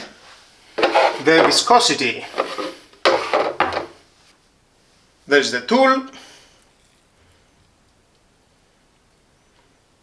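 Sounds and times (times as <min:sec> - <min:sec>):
person speaking: 0:00.8 - 0:02.8, 0:05.2 - 0:06.3.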